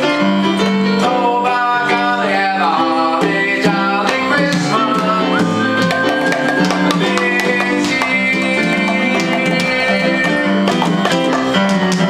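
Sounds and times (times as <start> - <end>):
held melody notes: 0.0 - 12.0
hand drum struck quickly: 4.1 - 12.0.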